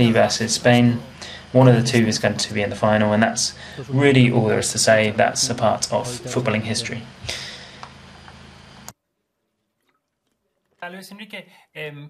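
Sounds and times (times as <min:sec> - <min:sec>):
man speaking: 0:00.0 - 0:07.2, 0:10.8 - 0:12.0
man gulping water: 0:09.4 - 0:10.8.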